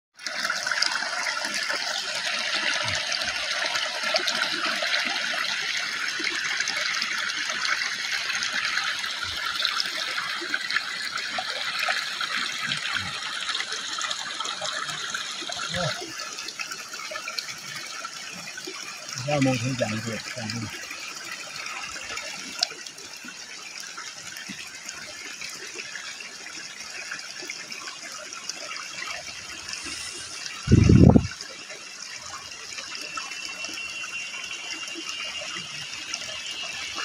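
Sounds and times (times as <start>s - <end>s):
stream running over rocks: 0.2s - 37.0s.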